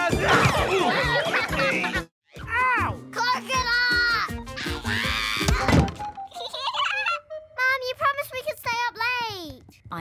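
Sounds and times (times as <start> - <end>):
background music: 0.0 - 8.8.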